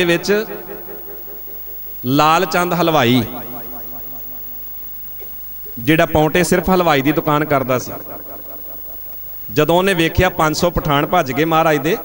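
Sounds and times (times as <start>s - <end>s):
man's amplified voice: 0.0s - 1.4s, 2.0s - 4.2s, 5.7s - 8.8s, 9.5s - 12.0s
low steady sound system hum: 0.0s - 12.0s.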